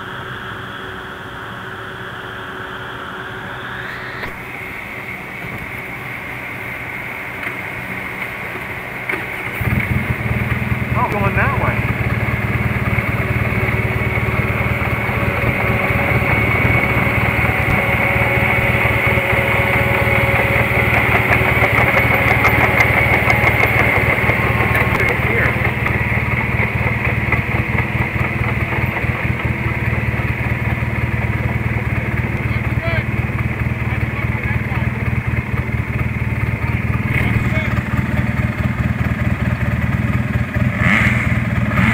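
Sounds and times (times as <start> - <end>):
crawler dozer engine: 0.0 - 41.9
vehicle engine running close: 0.0 - 41.9.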